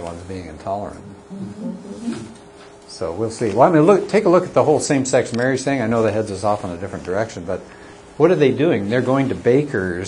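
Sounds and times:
faint steady hum: 0.0 - 10.0
low voice murmuring: 1.0 - 2.4.

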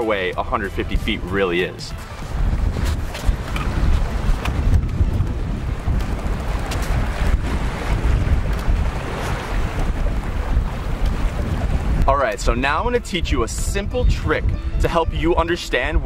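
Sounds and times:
wind noise on microphone: 0.0 - 16.0
small waves on shore: 1.9 - 12.0.

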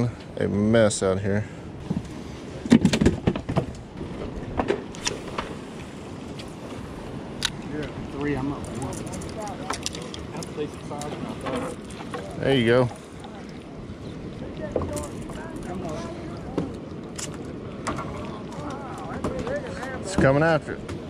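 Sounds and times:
outdoor background noise: 0.0 - 21.0
faint voices: 7.6 - 21.0.

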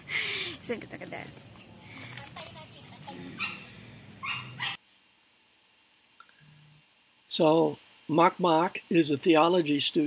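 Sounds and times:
high-pitched yelps: 3.4 - 4.8.

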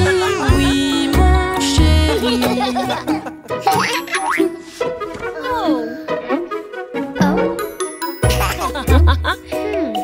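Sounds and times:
cartoon music: 3.6 - 9.2.

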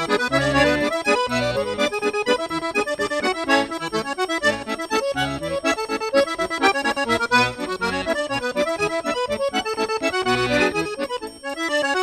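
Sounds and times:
accordion dance tune: 0.0 - 12.0.

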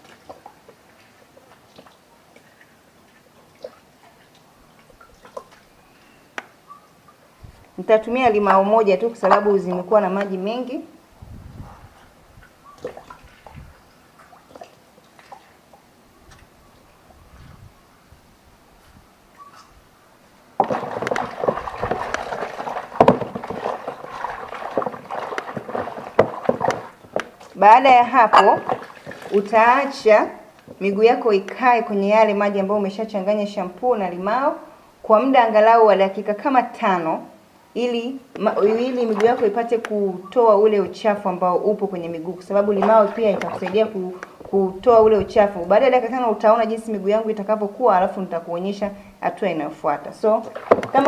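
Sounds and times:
water sloshing in a basin: 0.0 - 10.9, 11.5 - 17.7, 20.5 - 37.0, 37.8 - 51.0
juice dripping into water: 20.6 - 27.6.

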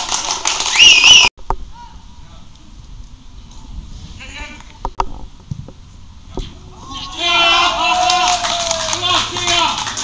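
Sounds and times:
player shouting: 6.7 - 9.8.

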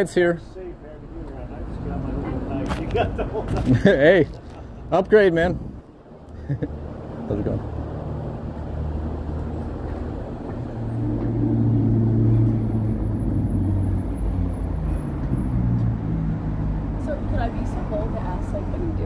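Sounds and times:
vehicle engine passing by: 6.6 - 19.0.

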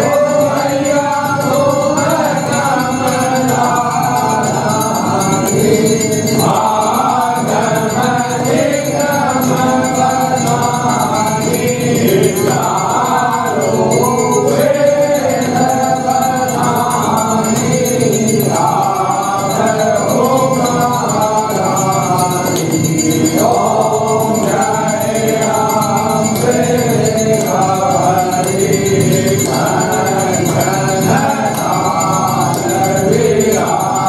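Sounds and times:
group singing a hymn in chorus: 0.0 - 34.0.

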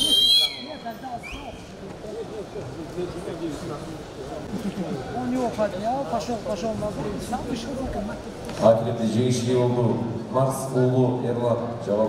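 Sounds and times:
referee's whistle blast: 0.0 - 1.5
faint whistle chirp: 0.0 - 1.6.

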